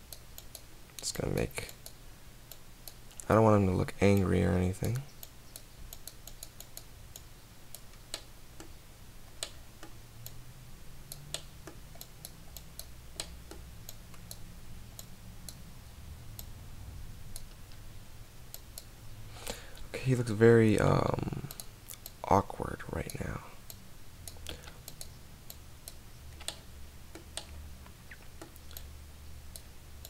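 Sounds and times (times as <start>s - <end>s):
steady low hum: 0.0s - 30.0s
mouse and keyboard clicks: 25.9s - 28.9s.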